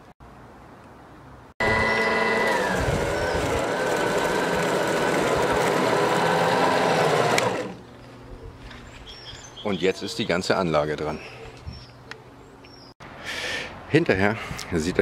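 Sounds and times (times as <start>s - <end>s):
electric lawn mower whine: 1.6s - 7.9s.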